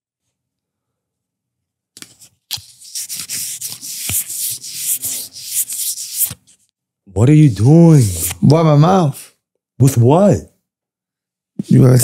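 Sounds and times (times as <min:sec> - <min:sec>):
paper napkin rubbing: 0:02.0 - 0:06.6, 0:08.0 - 0:08.4.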